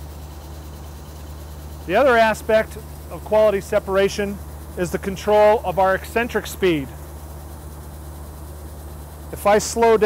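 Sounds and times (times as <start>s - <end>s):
machine humming: 0.0s - 10.0s.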